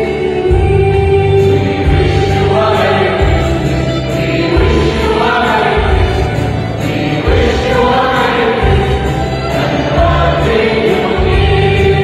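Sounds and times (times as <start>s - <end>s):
low accompaniment: 0.0s - 12.0s
mixed choir singing a hymn: 0.0s - 12.0s.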